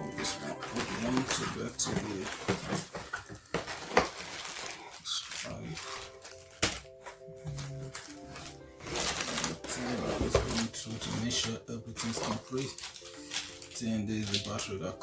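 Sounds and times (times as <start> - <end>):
background music: 0.0 - 15.0
plastic bags crinkling: 0.0 - 15.0.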